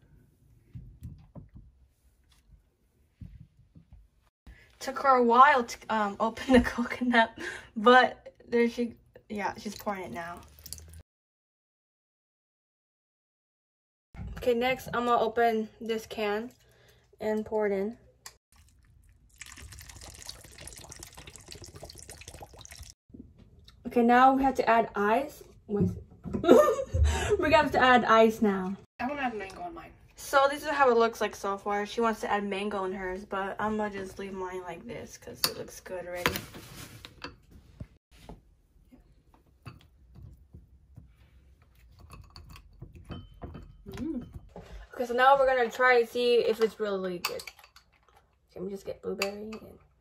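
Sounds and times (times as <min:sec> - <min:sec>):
liquid pouring into a bowl: 0:10.3 - 0:11.0, 0:18.5 - 0:23.0
spoon and ice clinking in bowl: 0:41.9 - 0:44.4, 0:46.5 - 0:48.4.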